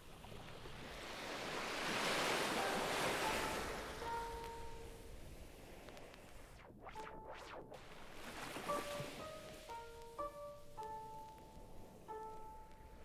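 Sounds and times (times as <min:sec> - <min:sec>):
surf-like swell of noise: 0:00.0 - 0:13.0
faint held tones: 0:02.3 - 0:13.0.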